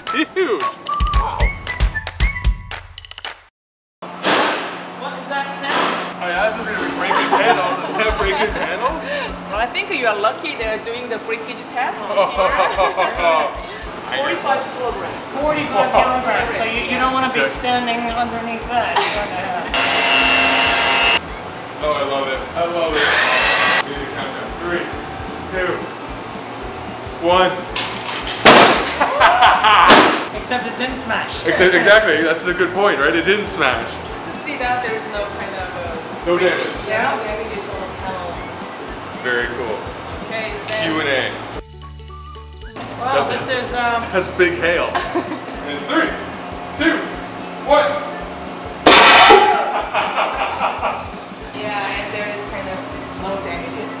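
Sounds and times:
launcher blast and impact: 4.2s - 4.9s, 28.4s - 28.9s, 29.9s - 30.3s, 48.8s - 49.6s
people laughing: 6.7s - 9.5s, 12.1s - 13.8s, 18.9s - 19.8s, 28.9s - 30.0s, 44.8s - 45.8s, 49.4s - 51.2s.

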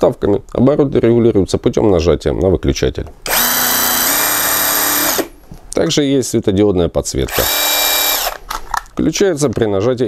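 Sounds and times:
cordless impact wrench motor running: 3.3s - 5.3s, 7.3s - 8.4s.

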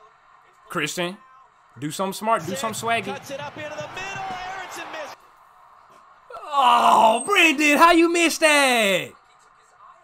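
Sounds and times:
man calling out excitedly: 6.4s - 9.1s.

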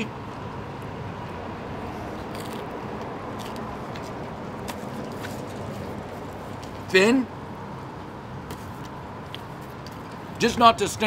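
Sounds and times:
distant traffic hum: 0.0s - 11.0s.

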